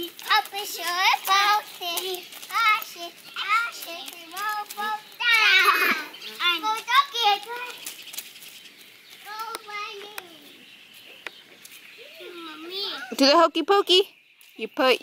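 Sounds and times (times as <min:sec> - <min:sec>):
children chattering and squealing: 0:00.0 - 0:13.4.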